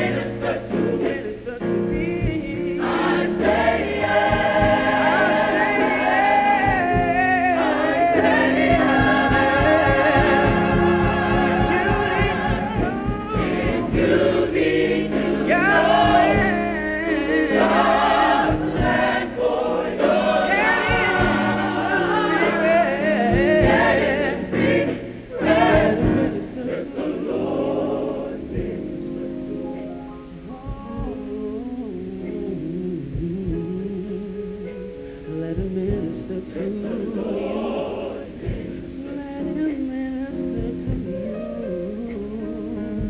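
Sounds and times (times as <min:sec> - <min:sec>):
drum kit: 0:00.0 - 0:31.6, 0:33.0 - 0:33.9, 0:35.5 - 0:39.6, 0:40.4 - 0:41.4
gospel choir singing: 0:00.0 - 0:33.8, 0:35.4 - 0:43.0
piano: 0:00.0 - 0:43.0.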